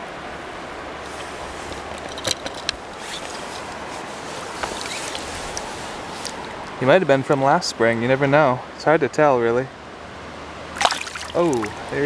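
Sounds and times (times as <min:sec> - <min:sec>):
river water rushing: 0:00.0 - 0:08.8, 0:09.7 - 0:12.0
soft knocks and splashes: 0:10.8 - 0:11.8.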